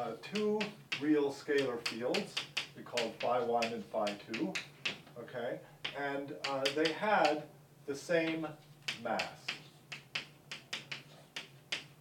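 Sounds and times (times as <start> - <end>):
chalk tapping on blackboard: 0.0 - 5.1, 5.8 - 7.4, 8.2 - 12.0.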